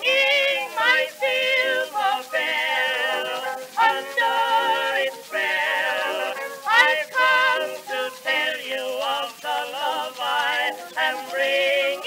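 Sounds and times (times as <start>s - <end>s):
female and male vocal duet: 0.0s - 12.0s
orchestra: 0.0s - 12.0s.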